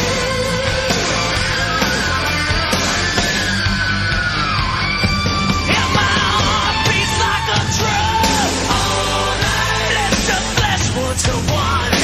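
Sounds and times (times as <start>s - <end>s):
rock song with high vocals: 0.0s - 12.0s.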